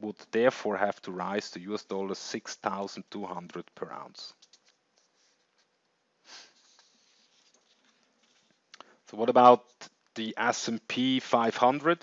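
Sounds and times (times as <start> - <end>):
person sniffing: 6.2 - 7.2.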